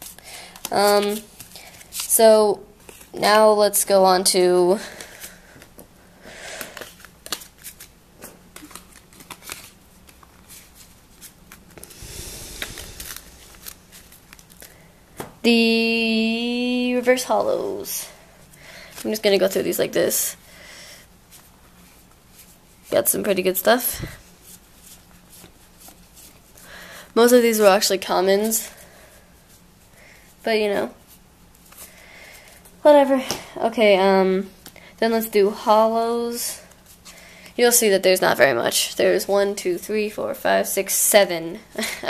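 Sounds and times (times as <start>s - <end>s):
cards being flipped through: 6.7s - 11.8s.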